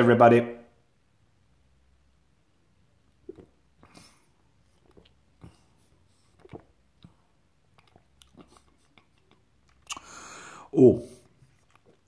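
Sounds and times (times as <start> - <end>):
wet mouth clicks: 3.1 - 10.3
person gulping: 3.1 - 12.0.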